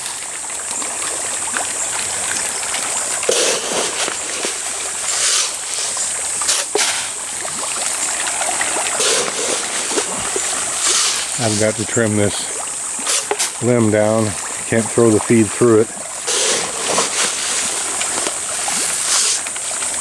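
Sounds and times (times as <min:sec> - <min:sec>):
fish splashing in water: 0:00.0 - 0:20.0.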